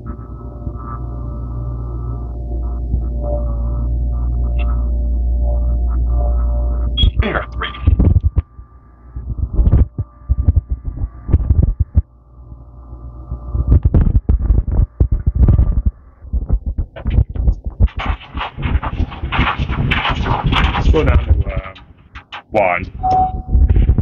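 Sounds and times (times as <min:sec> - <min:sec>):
elevator machine hum: 0:00.0 - 0:13.8
heavy low thumps: 0:02.2 - 0:12.1, 0:13.5 - 0:24.0.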